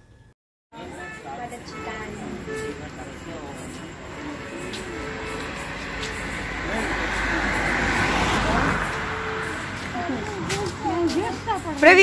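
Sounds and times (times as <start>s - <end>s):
vehicle passing by: 2.0s - 12.0s.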